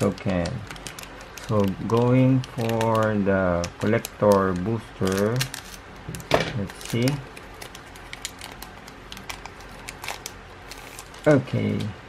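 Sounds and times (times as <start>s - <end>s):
foil wrapper crinkling: 0.0s - 11.8s.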